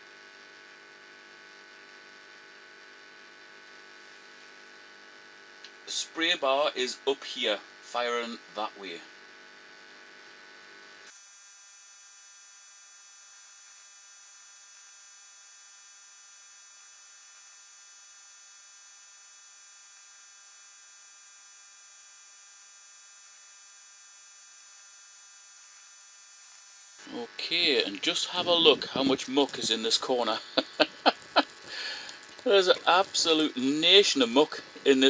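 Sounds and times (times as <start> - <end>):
faint electrical hum: 0.0 - 11.1, 21.7 - 35.0
high hiss: 25.7 - 35.0.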